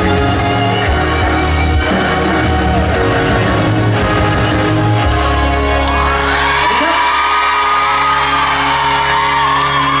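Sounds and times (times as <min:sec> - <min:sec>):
live pop song through speakers: 0:00.0 - 0:10.0.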